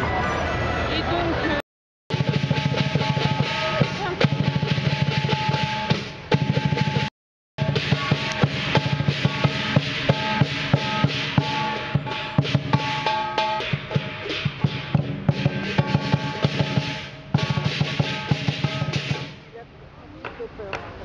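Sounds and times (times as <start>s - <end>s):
clashing hand cymbals: 2.1s - 19.4s
large drum beaten fast: 2.1s - 19.5s.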